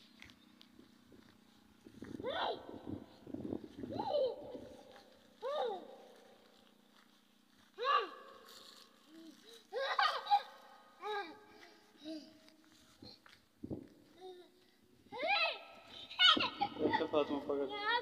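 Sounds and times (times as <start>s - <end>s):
low steady hum: 0.0s - 18.0s
child making sing-song calls: 3.8s - 6.1s.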